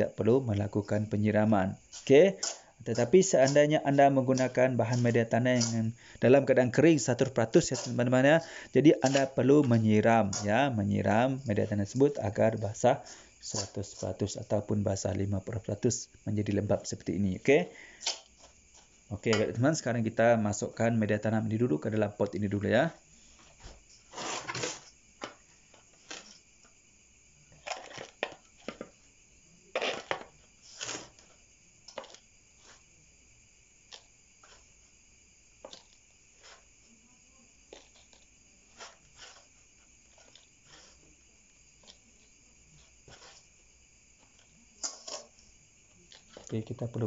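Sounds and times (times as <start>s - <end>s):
metal spoon scraping soil: 0.0s - 14.7s, 29.7s - 32.8s, 33.9s - 34.6s, 37.7s - 41.1s, 42.8s - 43.5s.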